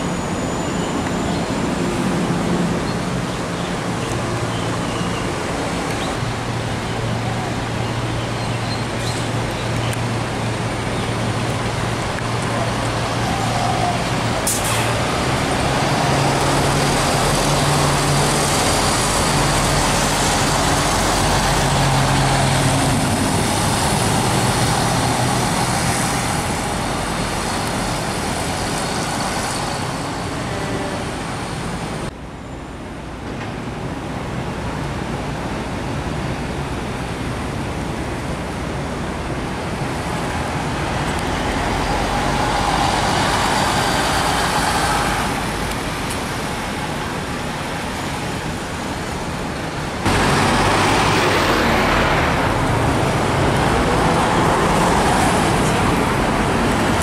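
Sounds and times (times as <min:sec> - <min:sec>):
bus driving off: 0:00.0 - 0:57.0
bus engine humming: 0:00.0 - 0:57.0.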